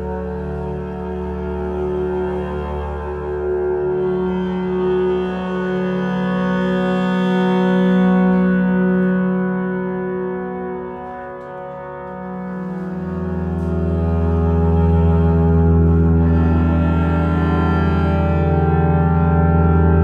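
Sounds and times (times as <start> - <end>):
cello with reverb: 0.0 - 20.0.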